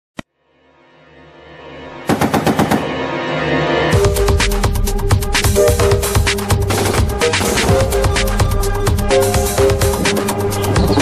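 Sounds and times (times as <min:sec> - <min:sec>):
loud music holding a chord: 0:00.6 - 0:11.0
machine-gun fire: 0:02.1 - 0:02.9.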